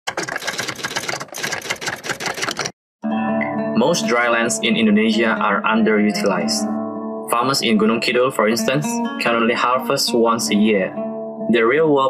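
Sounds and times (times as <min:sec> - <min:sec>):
typewriter typing: 0:00.1 - 0:02.8.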